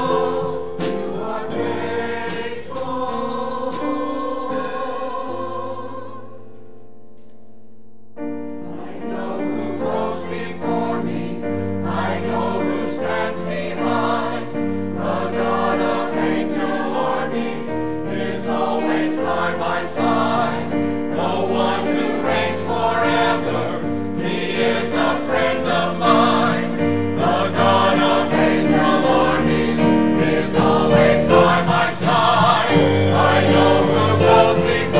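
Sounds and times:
mixed choir singing: 0.0s - 6.6s, 8.6s - 34.9s
held keyboard chords: 0.0s - 34.9s.

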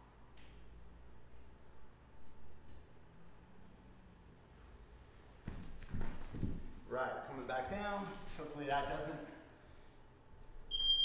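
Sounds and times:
bare footsteps on wooden floor: 5.4s - 6.9s.

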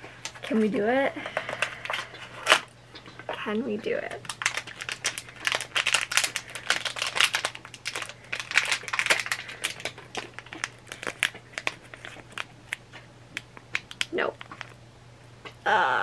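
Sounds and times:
packaging crinkling and tearing: 0.2s - 2.7s, 4.2s - 14.8s.

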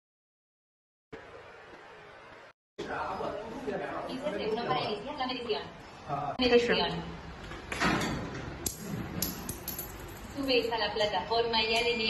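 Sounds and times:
coins clicking into coin slot: 9.2s - 10.6s.

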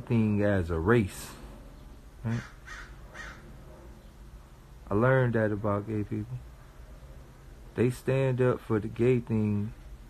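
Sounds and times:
low background hum: 0.0s - 10.0s
man saying a word: 2.2s - 2.5s.

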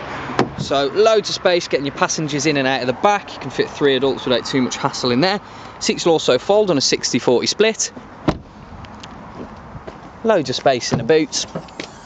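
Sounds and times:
car door shutting: 0.3s - 0.7s, 8.2s - 8.5s.

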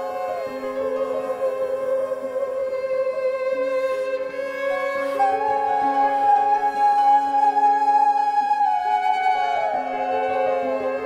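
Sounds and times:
electric violin: 0.0s - 11.0s.

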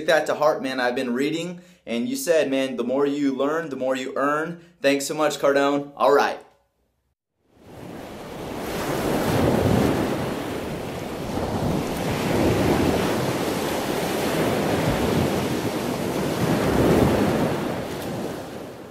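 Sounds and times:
ocean waves breaking: 7.5s - 18.9s.

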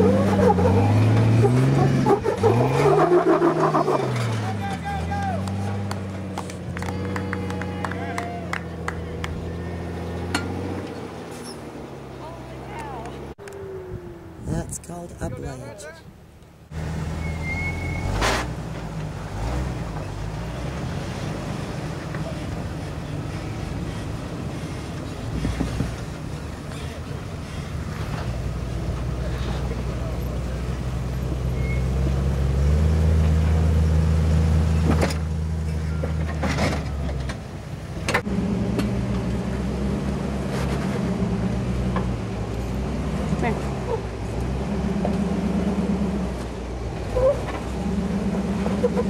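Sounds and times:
engine running low: 0.0s - 49.0s.

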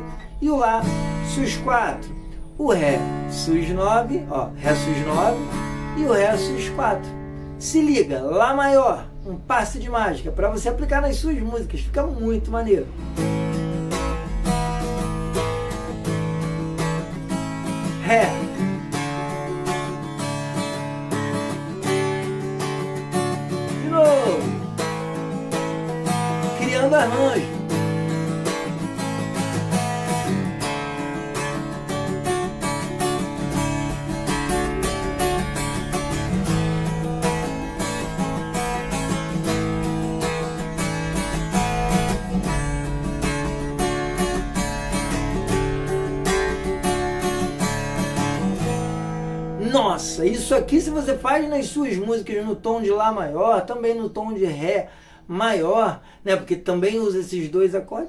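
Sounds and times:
acoustic guitar strumming: 0.0s - 11.6s, 12.2s - 56.2s.

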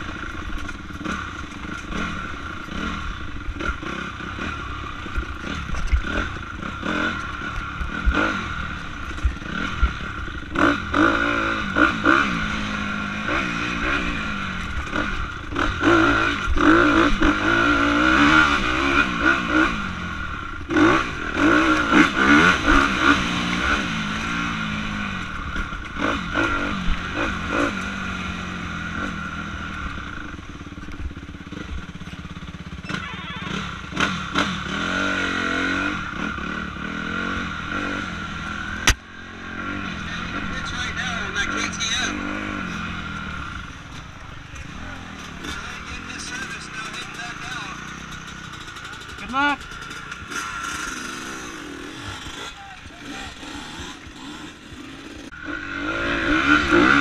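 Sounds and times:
dirt bike engine revving: 0.0s - 57.0s.

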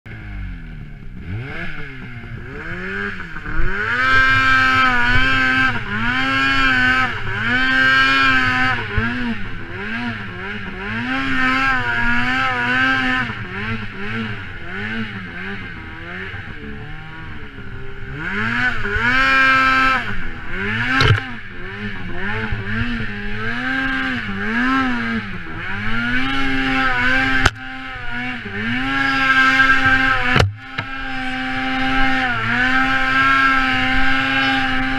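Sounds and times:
snowmobile engine revving: 0.1s - 34.9s.

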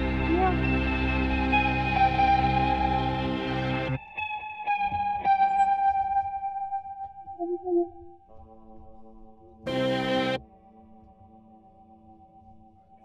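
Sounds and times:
electric guitar notes with echo: 0.0s - 8.2s, 9.6s - 10.4s
loud sustained band chord: 9.7s - 10.4s.

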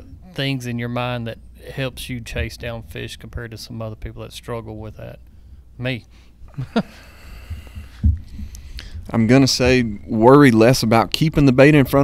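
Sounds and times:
faint low room hum: 0.0s - 12.0s
man laughing: 6.5s - 7.2s.

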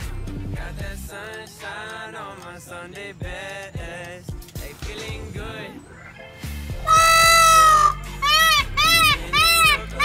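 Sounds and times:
quiet pop music: 0.0s - 10.0s
peacock calling: 6.8s - 10.0s.

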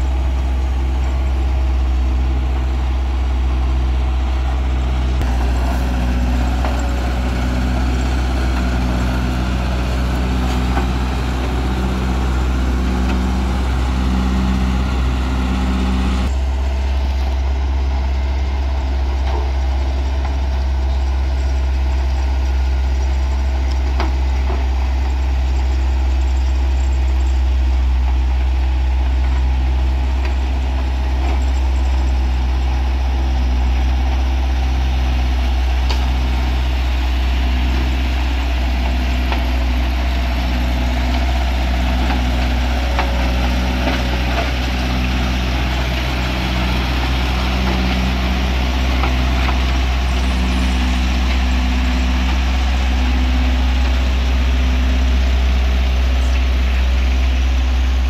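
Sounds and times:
road roller diesel engine: 0.0s - 58.0s.

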